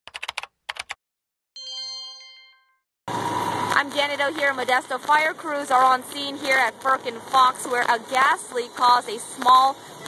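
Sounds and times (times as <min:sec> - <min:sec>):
sharp typing clicks: 0:00.1 - 0:01.0
bright bell-like chime: 0:01.6 - 0:02.8
street noise: 0:03.1 - 0:10.0
woman speaking: 0:03.7 - 0:09.8.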